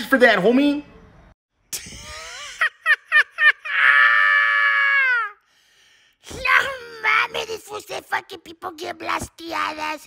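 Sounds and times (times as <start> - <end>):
man squealing: 3.1 - 5.4
man yelping in falsetto: 3.6 - 5.4, 6.3 - 7.4.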